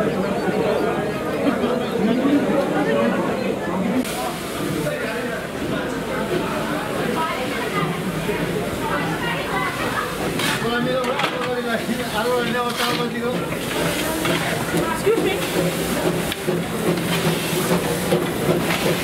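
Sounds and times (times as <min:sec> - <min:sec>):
crowd chatter: 0:00.0 - 0:19.0
steam locomotive hissing: 0:04.0 - 0:19.0.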